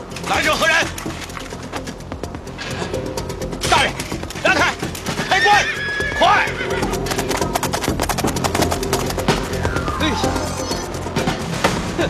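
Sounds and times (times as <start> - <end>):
galloping hooves: 0.0 - 10.2
background music: 0.0 - 12.0
horse whinnying: 5.1 - 7.4.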